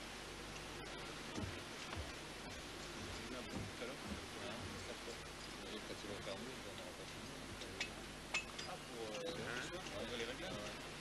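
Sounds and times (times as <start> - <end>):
people talking in background: 2.9 - 11.0.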